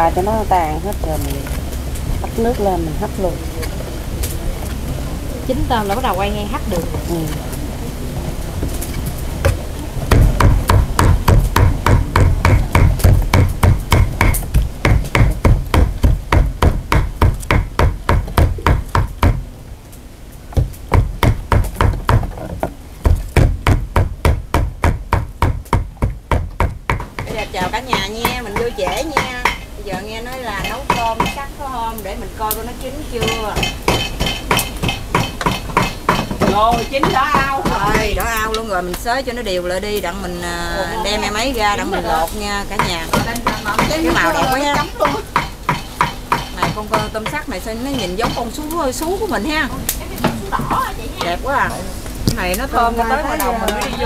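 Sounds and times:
cleaver chopping meat on board: 10.1s - 19.4s, 23.1s - 31.4s, 42.8s - 47.4s.

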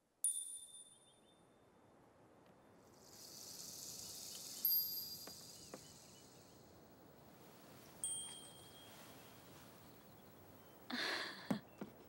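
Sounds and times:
high shimmering hiss: 2.8s - 10.3s
chime ringing: 8.0s - 9.0s.

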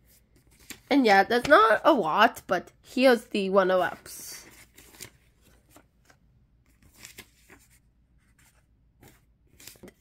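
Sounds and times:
photo paper rustling: 0.0s - 2.1s, 3.4s - 10.0s.

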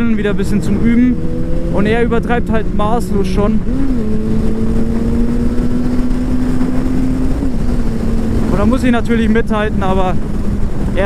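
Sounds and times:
motorcycle engine cruising: 0.0s - 11.0s
wind and road rush: 0.0s - 11.0s.

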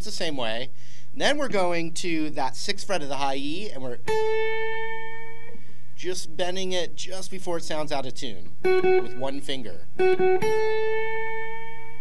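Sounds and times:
electric guitar picked notes: 4.0s - 5.8s, 8.5s - 12.0s
bent guitar note ringing: 4.1s - 5.7s, 8.6s - 12.0s.

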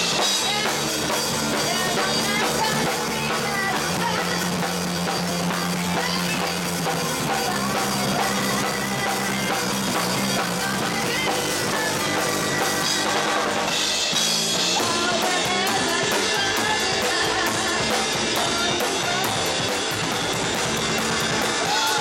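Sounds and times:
drum kit and cymbals: 0.0s - 22.0s
rock band playing live: 0.0s - 22.0s.

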